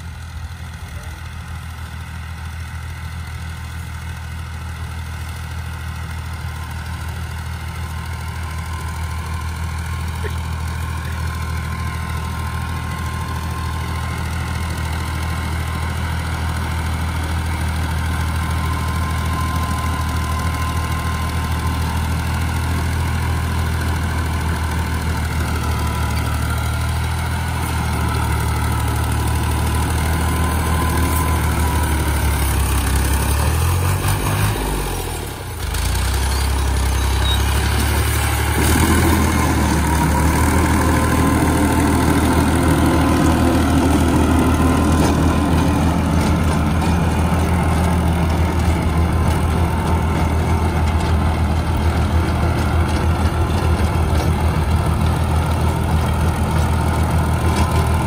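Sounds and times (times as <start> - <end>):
tractor diesel engine under load: 0.0 - 58.0.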